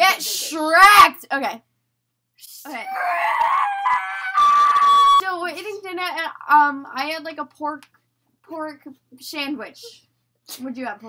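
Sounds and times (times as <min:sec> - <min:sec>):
child squealing: 0:02.7 - 0:05.2.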